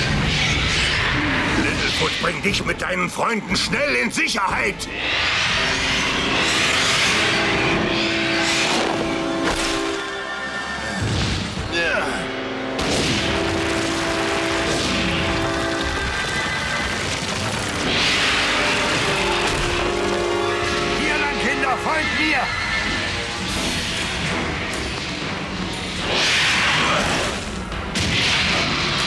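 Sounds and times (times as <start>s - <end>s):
dinosaur roars and screeches: 0.0s - 2.2s, 4.9s - 9.0s
dramatic orchestral music: 0.0s - 29.0s
crashing and rumbling rocks: 12.8s - 21.2s.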